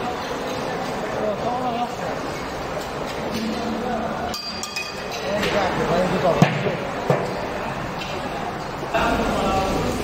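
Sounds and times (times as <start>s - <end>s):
chatter of voices: 0.0s - 10.0s
ringing clinks of glass: 4.3s - 5.3s.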